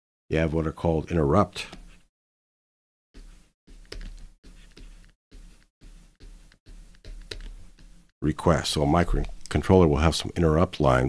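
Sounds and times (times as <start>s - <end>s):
stylus tapping on tablet screen: 3.7s - 8.0s.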